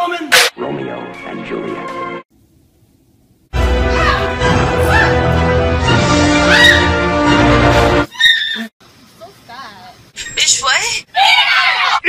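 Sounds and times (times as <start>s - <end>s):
women screaming and shrieking: 3.9s - 5.4s, 6.2s - 7.1s, 8.1s - 8.7s, 11.1s - 12.0s.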